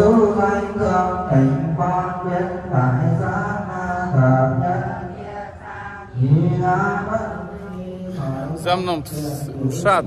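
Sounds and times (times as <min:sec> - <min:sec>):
women chanting together: 0:05.0 - 0:06.2.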